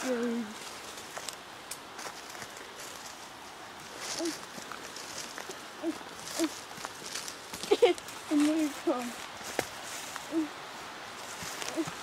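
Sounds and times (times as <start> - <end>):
rustling of ferns and undergrowth: 0.0 - 12.0
footsteps on forest path: 0.1 - 12.0.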